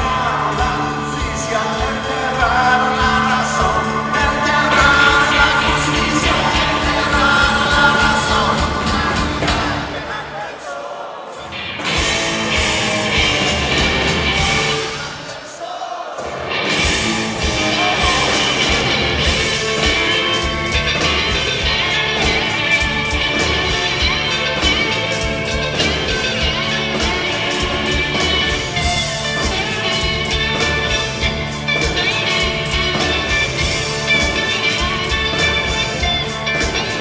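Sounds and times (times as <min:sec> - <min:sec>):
live rock band playing: 0:00.0 - 0:10.4, 0:11.3 - 0:15.4, 0:16.2 - 0:37.0
lead vocals: 0:00.0 - 0:37.0.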